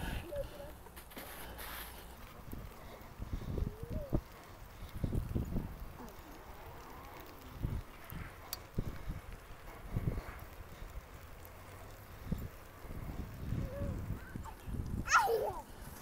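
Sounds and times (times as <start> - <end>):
bicycle rattles: 0.0 - 16.0
wind buffeting microphone: 2.0 - 16.0.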